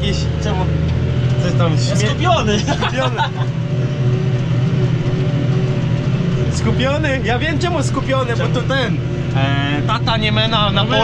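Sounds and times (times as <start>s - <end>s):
tractor diesel engine drone: 0.0s - 11.0s.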